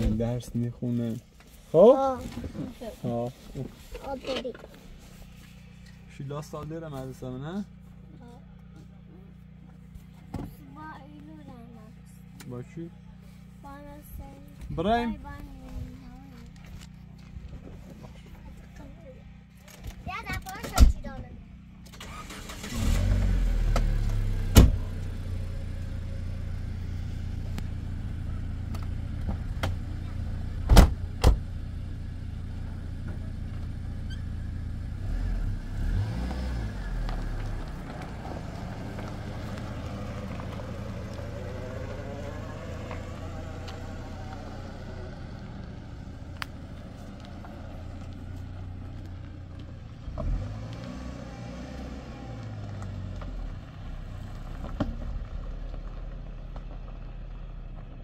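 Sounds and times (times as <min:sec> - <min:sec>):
car engine starting and running: 0:00.0 - 0:58.0.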